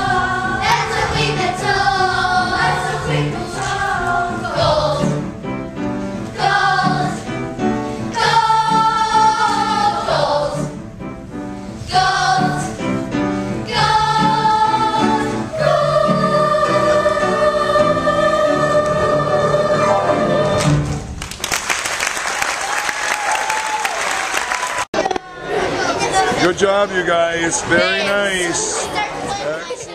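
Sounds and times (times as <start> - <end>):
children's chorus singing: 0.0 - 5.4, 6.3 - 7.4, 8.1 - 10.8, 11.8 - 12.8, 13.6 - 20.8.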